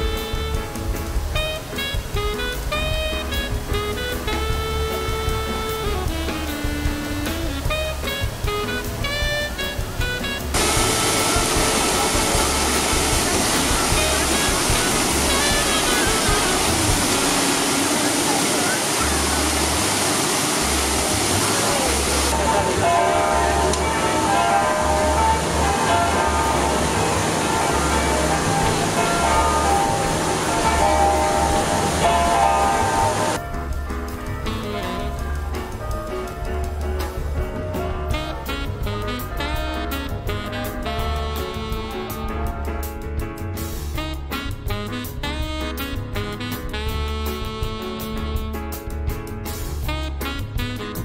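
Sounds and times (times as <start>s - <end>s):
fountain splashing into basin: 0.0s - 33.4s
background music: 0.0s - 51.0s.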